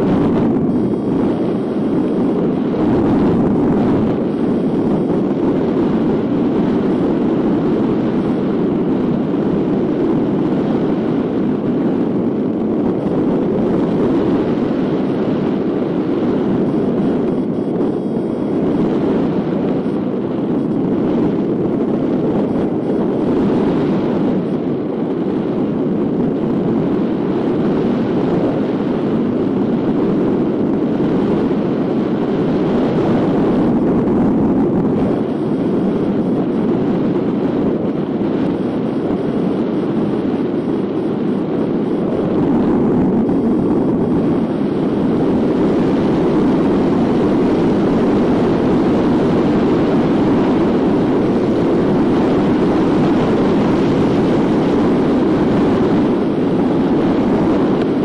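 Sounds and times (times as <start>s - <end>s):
wind rushing over microphone: 0.0s - 58.0s.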